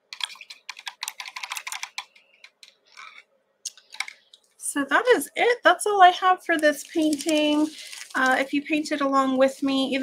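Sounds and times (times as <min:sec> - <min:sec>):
rapid typing on keyboard: 0:00.1 - 0:02.6.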